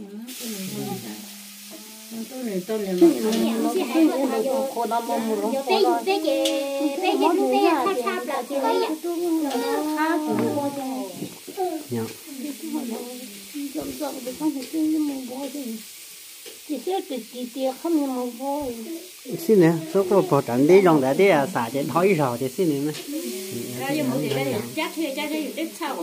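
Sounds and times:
people talking: 0:00.0 - 0:15.8, 0:16.7 - 0:26.0
steady hiss: 0:00.0 - 0:26.0
voice holding a single tone: 0:00.6 - 0:02.0, 0:10.2 - 0:10.9.

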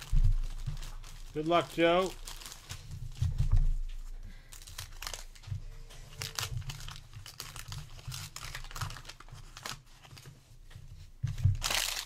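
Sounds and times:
wax paper wrapper tearing: 0:00.0 - 0:02.8, 0:04.6 - 0:05.4, 0:06.1 - 0:10.3, 0:11.6 - 0:12.0.

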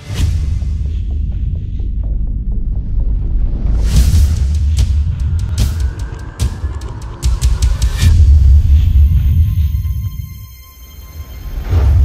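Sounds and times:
deep bass drone: 0:00.0 - 0:10.5.

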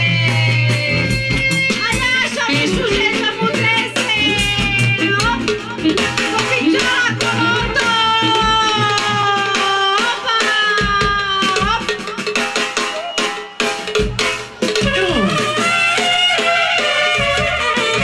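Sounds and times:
steady drum beat: 0:00.0 - 0:18.0
trumpets and saxophone melody: 0:00.0 - 0:18.0.

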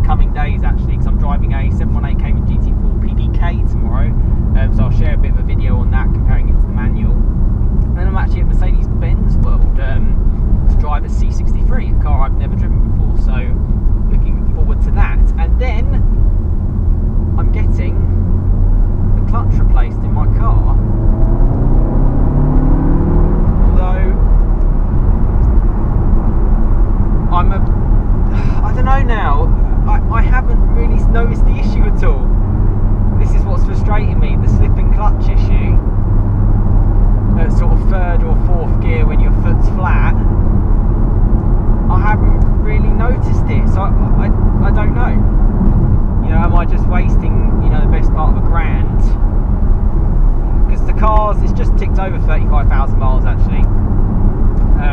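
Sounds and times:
car engine accelerating: 0:00.0 - 0:54.9
road noise: 0:00.0 - 0:54.9.

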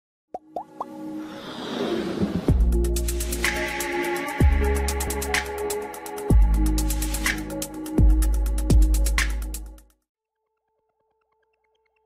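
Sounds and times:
whoosh: 0:01.2 - 0:02.9.

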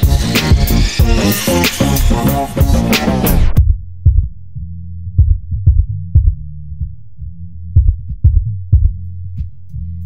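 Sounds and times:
deep bass line: 0:00.0 - 0:10.0
punchy low hits: 0:02.1 - 0:09.6.

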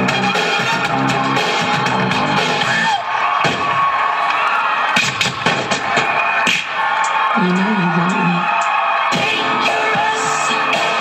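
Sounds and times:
crowd cheering and shouting: 0:00.0 - 0:11.0
dance music playing loudly: 0:00.0 - 0:11.0.

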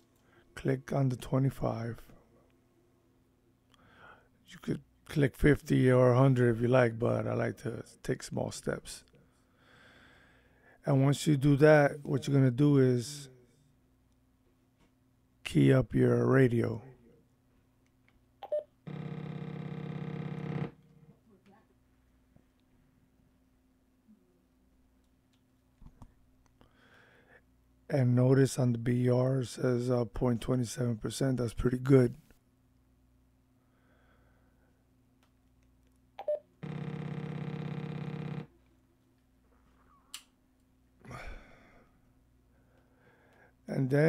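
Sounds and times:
buzzing tone: 0:18.9 - 0:20.8, 0:36.6 - 0:38.6.

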